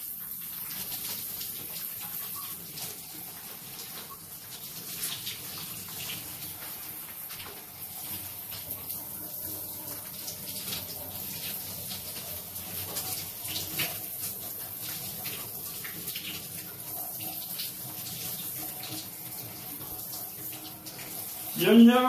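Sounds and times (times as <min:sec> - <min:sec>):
shower water splashing: 0:00.0 - 0:22.0.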